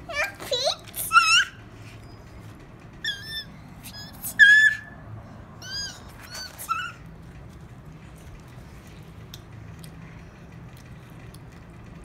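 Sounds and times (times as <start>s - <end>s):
small animal squeaking: 0.1s - 5.0s, 5.6s - 7.1s.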